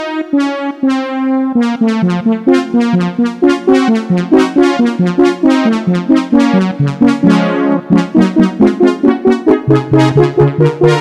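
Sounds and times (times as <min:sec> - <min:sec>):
synthesizer bass note: 0:00.0 - 0:11.0
synthesizer staccato chords: 0:00.0 - 0:11.0.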